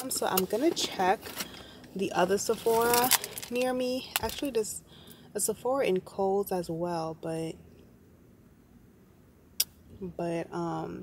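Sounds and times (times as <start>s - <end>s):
faint low car hum: 0.0s - 11.0s.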